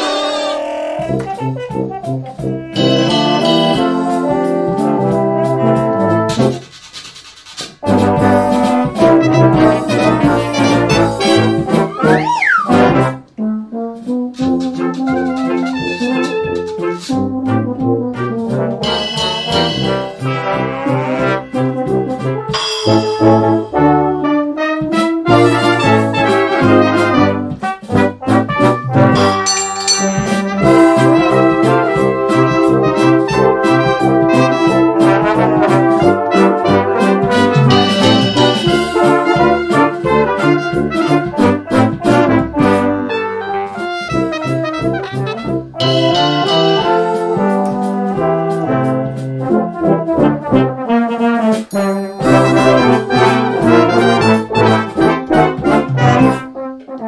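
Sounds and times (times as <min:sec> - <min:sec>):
brass band playing: 0:00.0 - 0:00.6, 0:01.2 - 0:06.8, 0:07.8 - 0:57.0
rising-and-falling pitch slide: 0:11.9 - 0:12.8.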